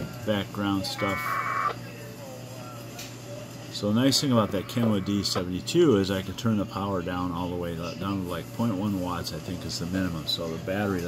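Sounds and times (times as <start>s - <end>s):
warbling two-tone radio data burst: 0.8s - 1.8s, 4.0s - 5.5s.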